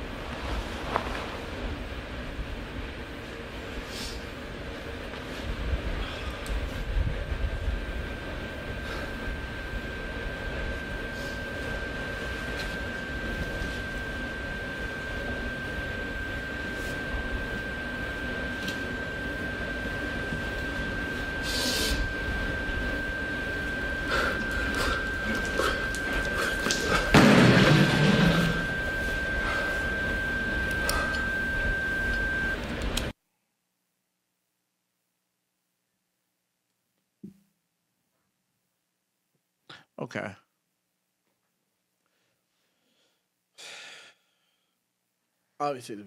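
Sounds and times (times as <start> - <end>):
thin steady high tone: 8.7 - 32.6
loud thump: 27.1 - 28.8.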